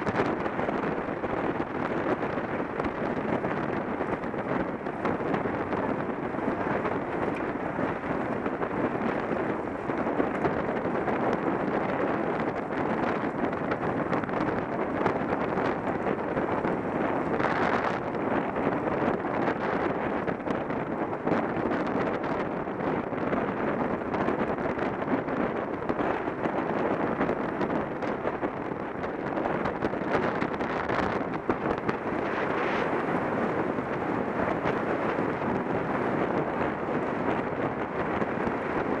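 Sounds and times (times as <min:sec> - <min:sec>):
wind rushing over microphone: 0:00.0 - 0:39.0.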